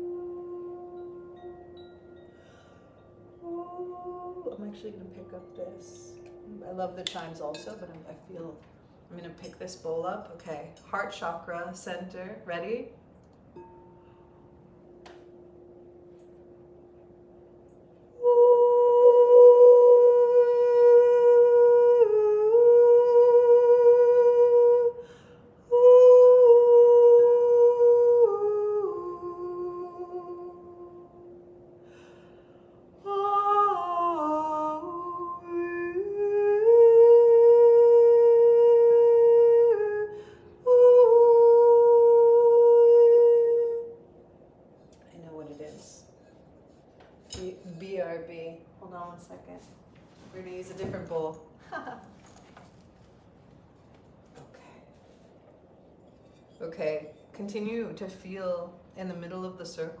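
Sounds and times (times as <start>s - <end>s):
woman humming long notes: 0.0s - 7.2s, 13.6s - 44.1s
singing bowl ringing: 0.0s - 11.3s, 12.9s - 24.3s, 28.2s - 35.6s.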